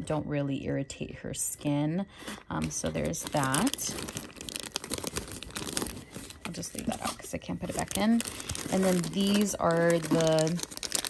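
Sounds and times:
plastic packaging crinkling: 2.2s - 11.0s.

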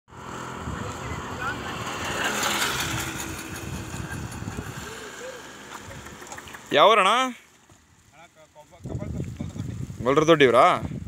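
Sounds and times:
wind rumble on microphone: 0.2s - 6.4s, 8.7s - 11.0s
sheep hooves shuffling on asphalt: 5.5s - 10.0s.

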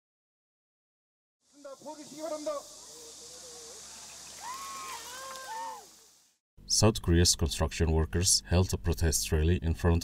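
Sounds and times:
outdoor ambience hiss: 1.4s - 8.8s
water splashing over people: 1.8s - 6.3s.

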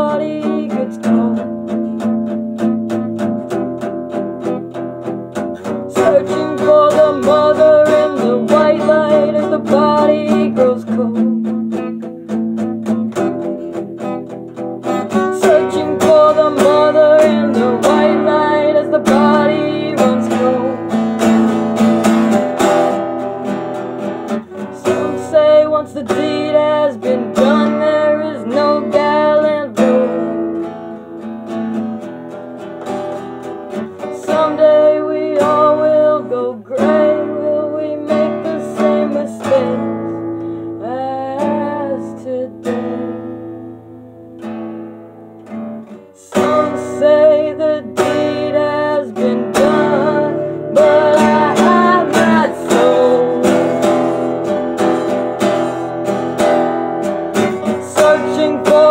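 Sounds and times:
acoustic guitar strumming: 0.0s - 58.9s.

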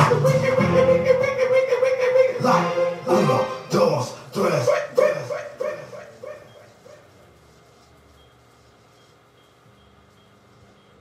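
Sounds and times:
echoing vocal-like sound: 0.0s - 6.3s.

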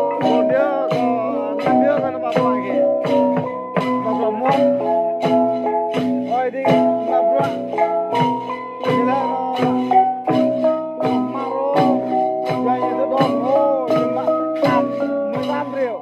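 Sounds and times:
tuned gongs struck in rhythm: 0.0s - 16.0s.

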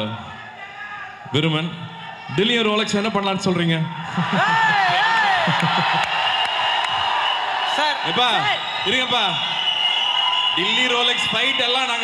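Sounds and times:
audience cheering and screaming: 3.8s - 12.0s
shouted whoops: 4.0s - 12.0s.

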